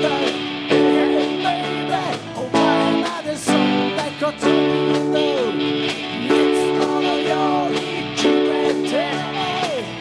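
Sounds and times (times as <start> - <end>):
ringing guitar chords: 0.0 - 10.0
rock band playing: 0.0 - 10.0.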